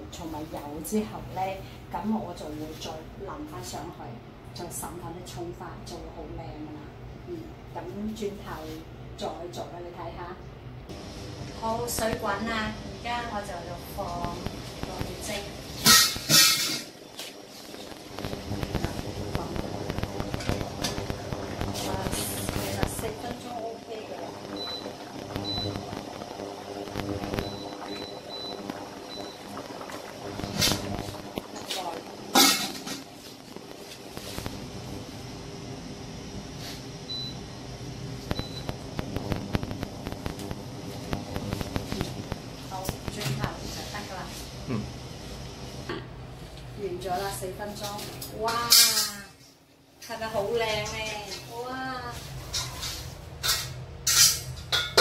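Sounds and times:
induction hob hum: 0.0 - 55.0
metal pans and lids clanking: 15.8 - 17.0, 31.7 - 33.1, 47.8 - 49.3, 52.4 - 55.0.

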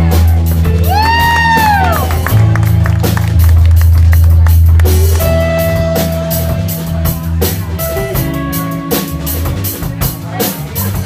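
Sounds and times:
live band playing a groove: 0.0 - 11.0.

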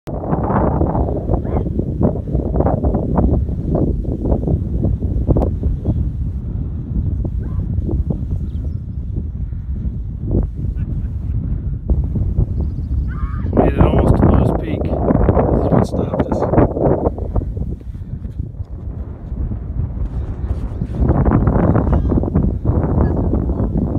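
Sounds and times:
wind buffeting microphone: 0.1 - 23.9.

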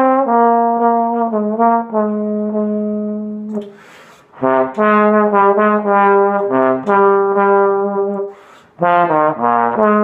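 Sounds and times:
trombone playing jazz ballad: 0.0 - 10.0.

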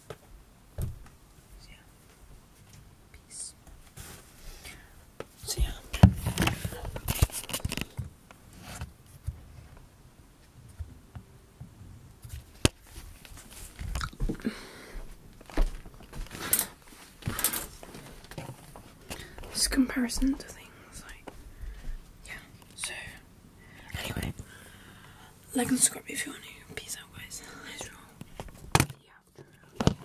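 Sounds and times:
person whispering: 1.6 - 2.0, 3.1 - 3.6, 5.4 - 7.0, 19.5 - 21.3, 22.2 - 24.5, 25.5 - 28.2, 29.0 - 29.4.

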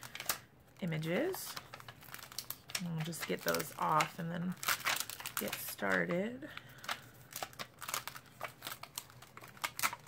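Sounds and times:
plastic stamps clicking and crinkling: 0.0 - 10.0.

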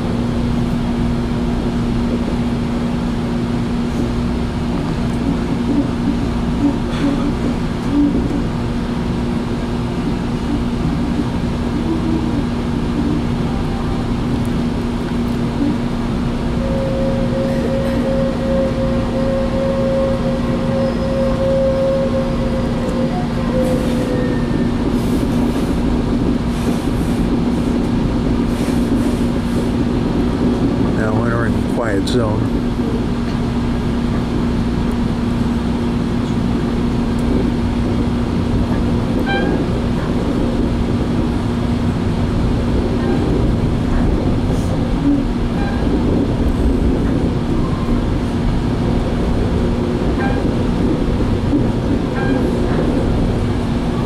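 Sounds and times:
train car running rumble: 0.0 - 54.0.

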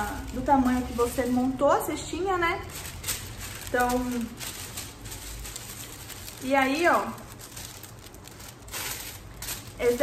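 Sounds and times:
tissue paper rustling and crinkling: 0.0 - 10.0.

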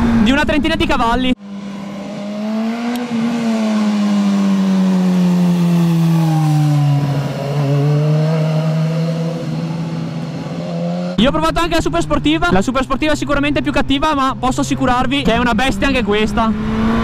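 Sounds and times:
motorcycle engine passing by: 1.4 - 11.2.

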